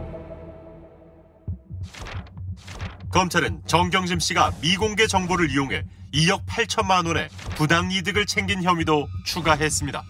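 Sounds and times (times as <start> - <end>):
low pulsing beat: 1.4 - 10.0.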